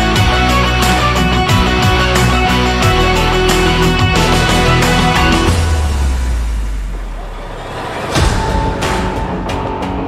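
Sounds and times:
deep bass drone: 0:00.0 - 0:10.0.

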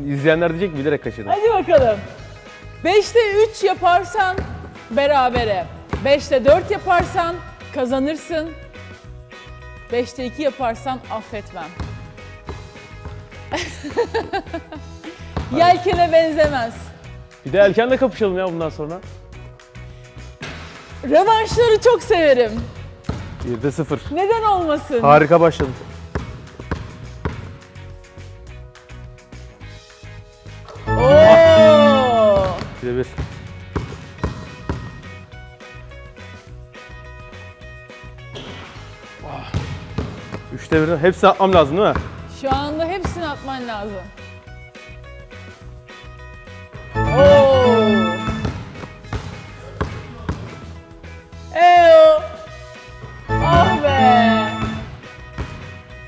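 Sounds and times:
background music: 0:00.0 - 0:56.0
basketball bouncing on hardwood: 0:04.3 - 0:07.2, 0:11.7 - 0:13.3, 0:15.4 - 0:16.7, 0:22.6 - 0:23.6, 0:25.6 - 0:27.5, 0:32.4 - 0:35.0, 0:39.6 - 0:40.8, 0:41.5 - 0:43.2, 0:48.4 - 0:50.6
drawn-out vocal exclamations: 0:30.9 - 0:32.4.

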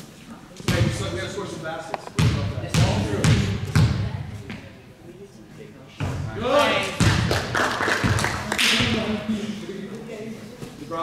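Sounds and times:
basketball bouncing on wooden floor: 0:02.2 - 0:04.1.

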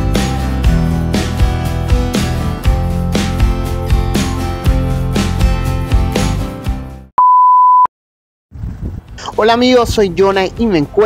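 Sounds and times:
background music: 0:00.0 - 0:07.1, 0:09.2 - 0:11.0
television test-tone beep: 0:07.2 - 0:07.9.

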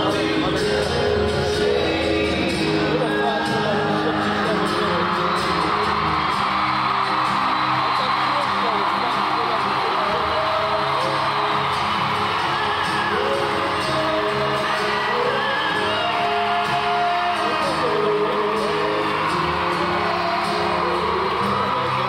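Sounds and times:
people singing: 0:00.0 - 0:05.9, 0:12.8 - 0:22.0
crowd singing along and whooping: 0:00.0 - 0:08.2, 0:09.7 - 0:22.0
acoustic guitars strumming: 0:00.0 - 0:22.0.

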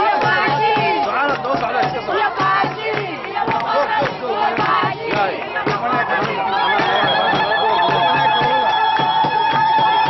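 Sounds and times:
crowd singing to a beat: 0:00.0 - 0:10.0.

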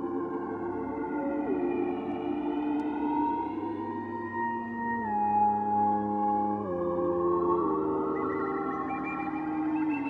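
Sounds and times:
ambient synthesizer tones: 0:00.0 - 0:10.0.

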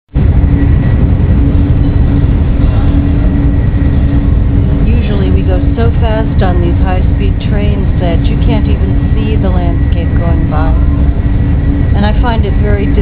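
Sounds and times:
constant hum: 0:00.1 - 0:13.0
train low rumble: 0:00.1 - 0:13.0
woman's voice: 0:04.8 - 0:10.9, 0:12.0 - 0:13.0.

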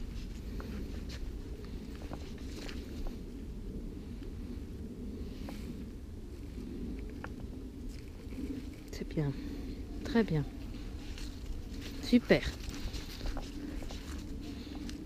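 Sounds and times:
footsteps on leafy dirt path: 0:00.0 - 0:03.2, 0:08.2 - 0:15.0
steady low rumble: 0:00.0 - 0:15.0.

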